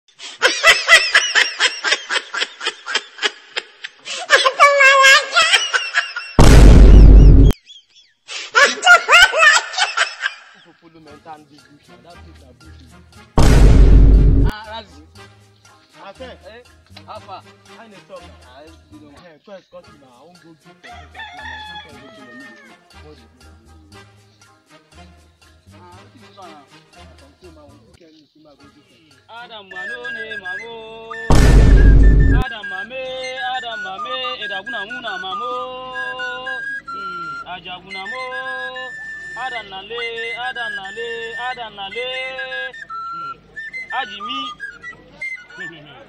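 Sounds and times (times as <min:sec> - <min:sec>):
high-pitched laugh: 0:00.3 - 0:06.4, 0:08.3 - 0:10.6
background music with low beat: 0:13.4 - 0:14.5, 0:31.3 - 0:32.5
rooster crowing: 0:20.8 - 0:22.8.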